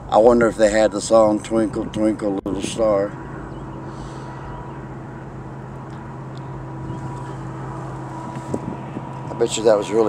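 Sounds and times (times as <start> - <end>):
faint background rush: 0.0 - 10.0
steady low hum: 0.0 - 10.0.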